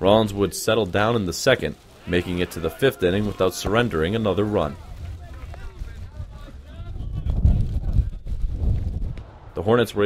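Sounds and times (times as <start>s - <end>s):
distant voices calling out: 1.5s - 7.1s
wind buffeting microphone: 2.6s - 9.9s.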